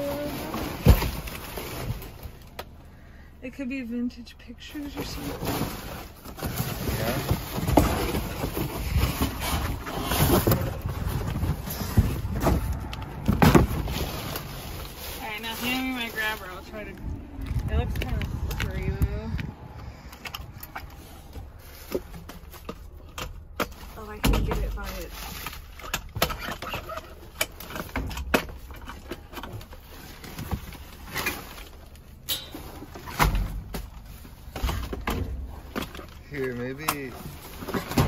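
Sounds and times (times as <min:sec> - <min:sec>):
trash rustling: 0:00.0 - 0:03.0, 0:04.6 - 0:38.0.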